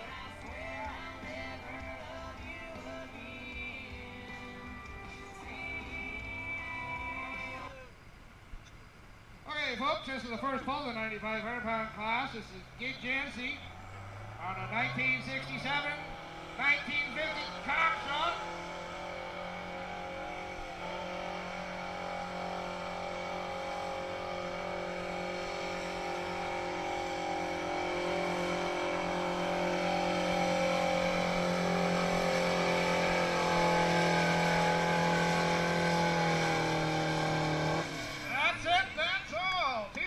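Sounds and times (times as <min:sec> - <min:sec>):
announcer speaking: 0:09.5 - 0:13.8, 0:14.4 - 0:18.7, 0:38.3 - 0:40.0
tractor engine labouring: 0:09.5 - 0:40.0.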